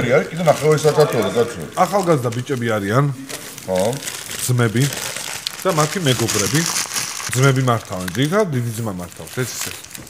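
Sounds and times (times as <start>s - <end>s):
men talking: 0.0s - 9.8s
paper wrapper crinkling: 0.4s - 10.0s.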